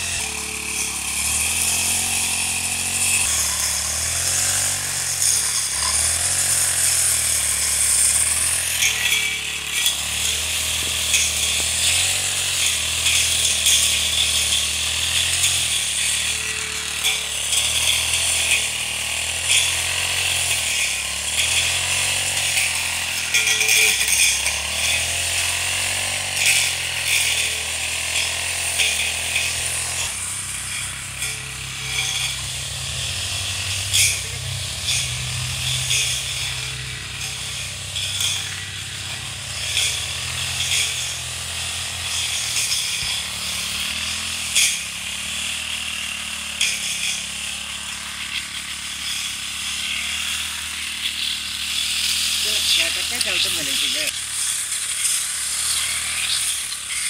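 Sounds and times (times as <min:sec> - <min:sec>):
brush cutter engine running: 0:00.0 - 0:57.0.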